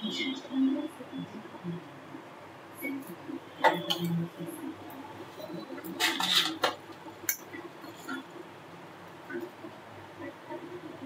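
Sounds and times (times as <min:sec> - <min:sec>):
kitchen utensils clattering: 0:05.4 - 0:08.3.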